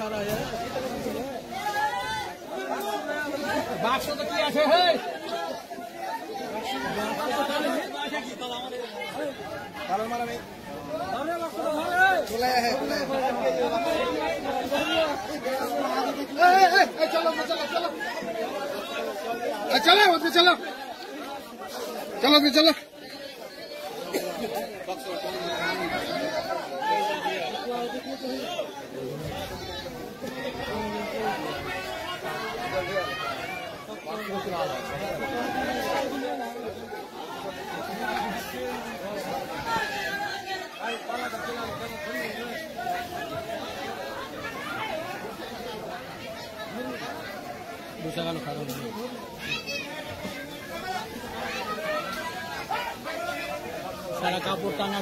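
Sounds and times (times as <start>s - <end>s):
people talking: 0.0s - 55.0s.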